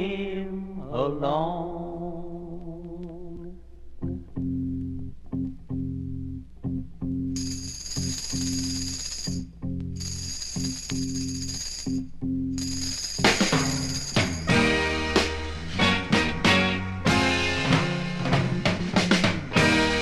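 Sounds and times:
high jingling percussion: 0:07.4 - 0:09.4, 0:10.0 - 0:12.0, 0:12.6 - 0:14.8
psychedelic rock riff: 0:13.2 - 0:20.0.

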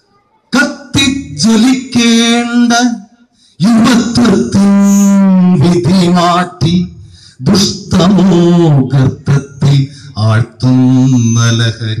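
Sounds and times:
man chanting into a microphone: 0:00.5 - 0:12.0.

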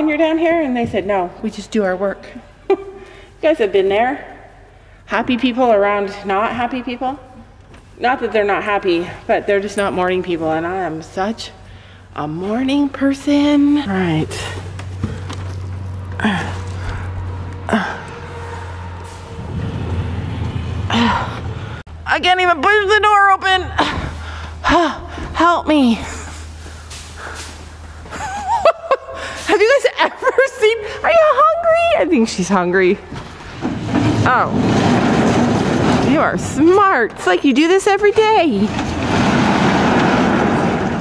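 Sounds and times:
sliding barn door rumbling: 0:14.0 - 0:21.8, 0:33.0 - 0:37.0, 0:38.4 - 0:41.0.

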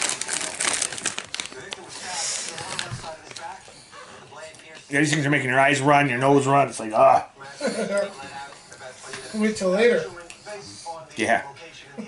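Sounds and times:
chip bag crinkling: 0:00.0 - 0:03.5.

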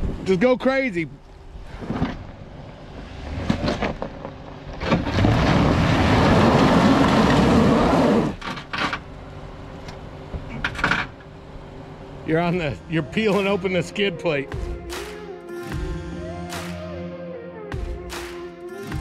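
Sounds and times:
skid plate scraping rocks: 0:01.6 - 0:09.1
tyres spinning on loose dirt: 0:01.7 - 0:09.4
engine revving hard: 0:04.8 - 0:08.4.

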